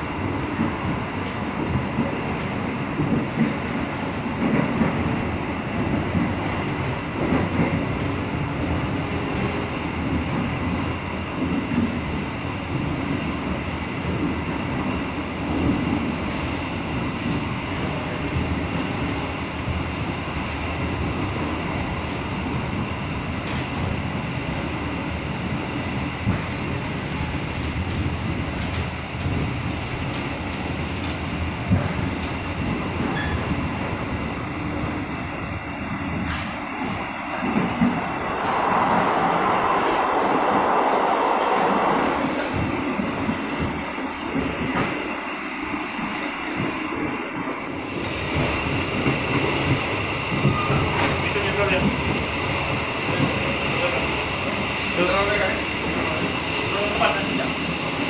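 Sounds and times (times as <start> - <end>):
train rumbling on rails: 0.0 - 58.0.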